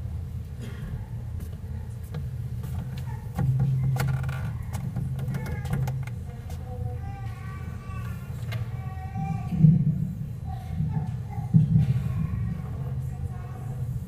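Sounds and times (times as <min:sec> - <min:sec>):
steady low hum: 0:00.0 - 0:14.0
faint voices: 0:00.6 - 0:14.0
microphone handling clicks and bumps: 0:02.1 - 0:06.7.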